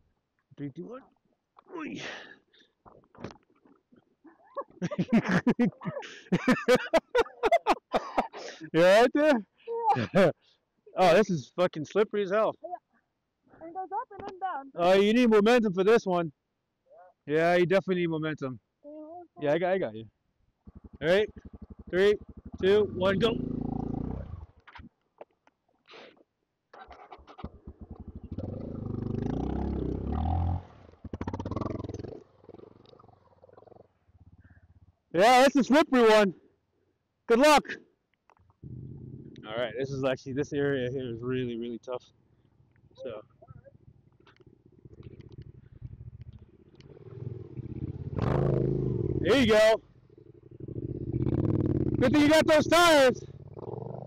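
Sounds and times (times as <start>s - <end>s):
motorcycle engine revving hard: 20.6s - 24.5s, 27.4s - 32.2s, 45.5s - 49.6s, 50.2s - 54.0s.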